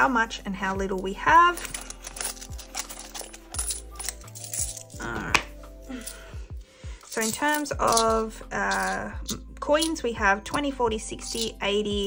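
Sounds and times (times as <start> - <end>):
coins clinking: 0.9 - 11.6.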